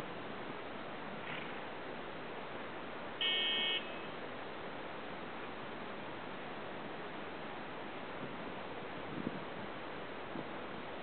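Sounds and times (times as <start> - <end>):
steady background hiss: 0.0 - 11.0
short buzzer beep: 3.2 - 4.1.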